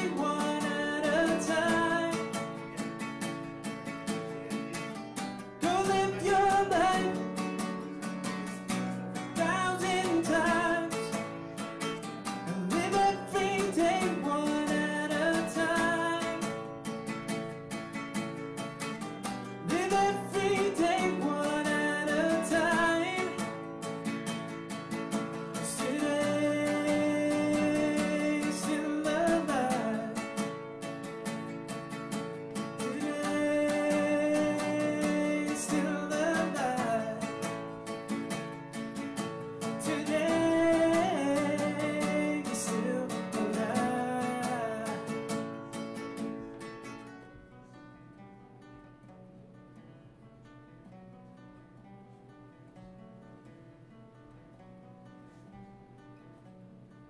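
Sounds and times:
man singing: 0.0 - 2.8, 5.6 - 7.7, 8.5 - 11.4, 12.3 - 16.6, 19.6 - 23.7, 25.6 - 30.5, 32.6 - 37.6, 39.6 - 45.4
strummed acoustic guitar: 0.0 - 57.0.

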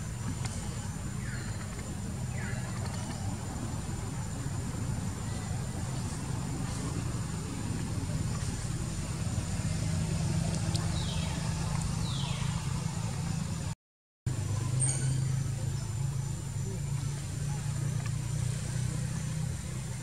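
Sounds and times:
low motor hum: 0.0 - 20.0.

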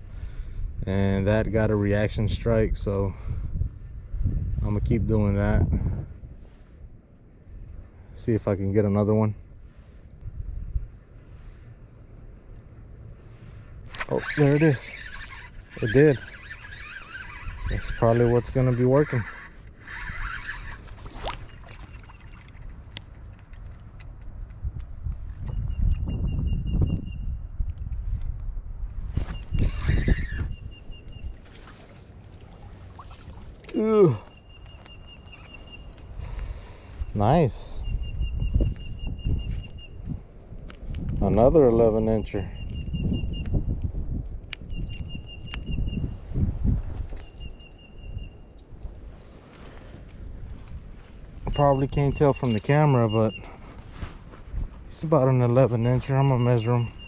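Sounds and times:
low rumbling wind: 0.0 - 57.0
bird trilling: 13.9 - 22.6, 29.3 - 40.0, 51.4 - 53.6, 55.7 - 57.0
small ticks: 13.9 - 26.1, 43.4 - 45.7
sharp clicks: 22.7 - 25.6
water splash: 31.4 - 33.8.

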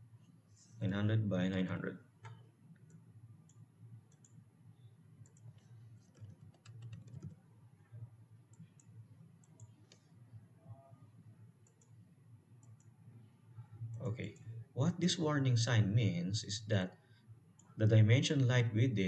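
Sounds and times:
low steady hum: 0.0 - 19.0
computer mouse clicks: 2.2 - 4.4, 5.2 - 7.4, 8.5 - 10.1, 11.6 - 12.0, 12.6 - 13.0
keyboard keystrokes: 6.1 - 7.4.

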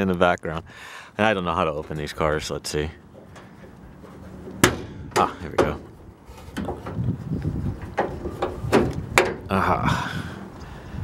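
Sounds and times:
hood latch clunk: 1.7 - 7.1, 7.7 - 9.5.

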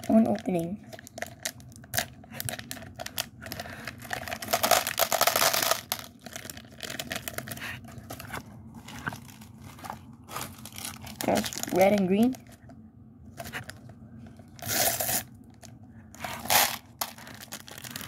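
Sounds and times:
plastic wrapper crinkling: 0.0 - 12.7, 13.3 - 18.0.

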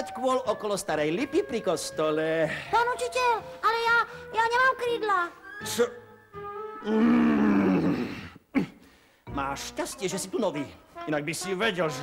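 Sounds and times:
man roaring angrily: 6.8 - 8.2.

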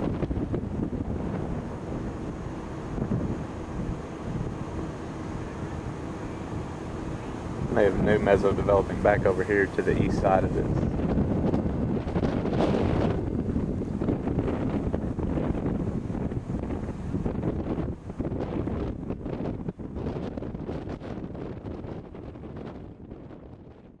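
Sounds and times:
wind buffeting microphone: 0.0 - 24.0.

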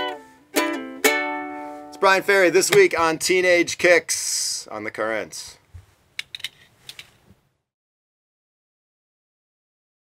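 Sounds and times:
handling clicks and taps: 6.2 - 7.1.

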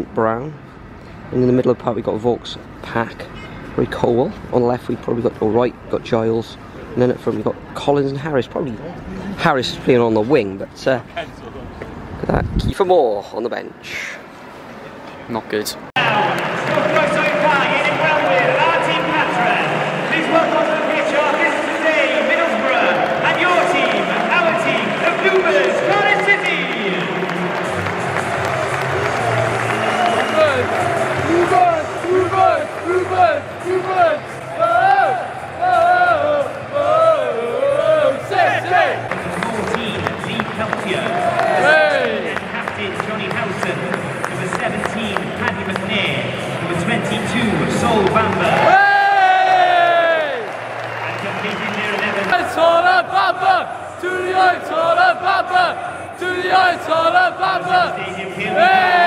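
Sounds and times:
crowd clapping: 16.0 - 34.5, 38.6 - 46.2, 46.8 - 53.2
crowd singing: 52.5 - 59.0
crowd chanting rhythmically: 52.6 - 59.0.

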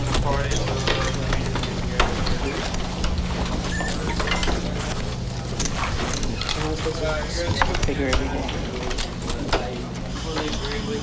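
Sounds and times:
sharp clicks and knocks: 0.0 - 10.0
steady low hum: 0.0 - 11.0.

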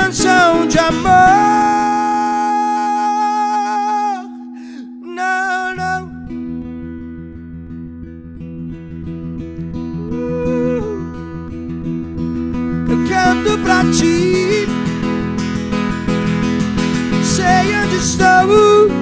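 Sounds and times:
man singing: 0.0 - 6.4, 10.0 - 11.3, 12.8 - 15.2, 17.1 - 19.0
acoustic guitar: 0.0 - 19.0.

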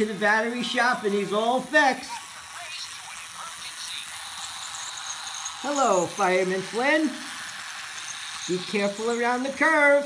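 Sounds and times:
toy train motor whirring: 0.0 - 10.0
toy train on plastic track: 0.0 - 10.0.

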